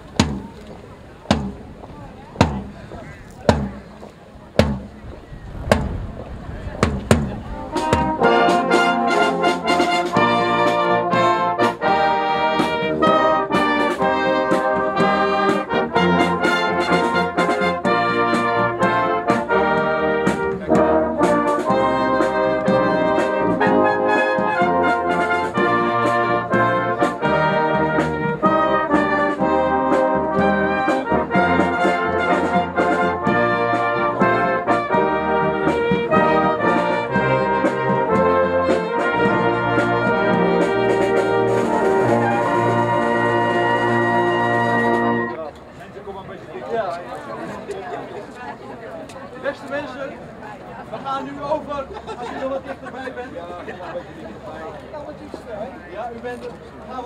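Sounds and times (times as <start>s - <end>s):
brass band playing: 5.7s - 45.5s.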